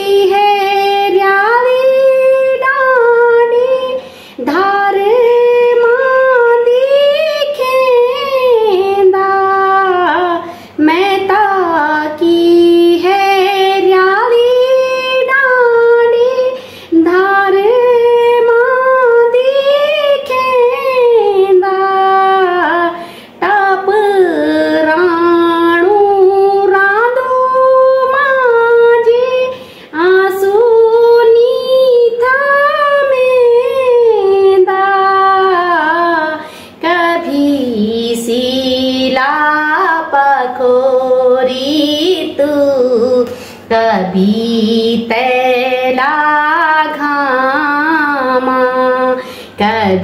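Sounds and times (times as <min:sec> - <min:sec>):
woman singing unaccompanied folk song: 0:00.0 - 0:50.0.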